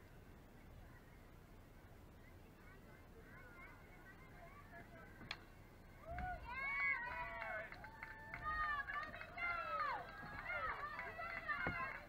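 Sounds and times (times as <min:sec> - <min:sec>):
crowd shouting and cheering: 0:06.0 - 0:12.0.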